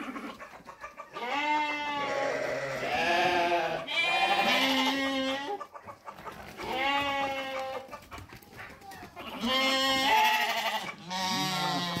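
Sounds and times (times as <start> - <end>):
sheep bleating: 1.1 - 5.6, 6.6 - 7.9, 9.2 - 12.0.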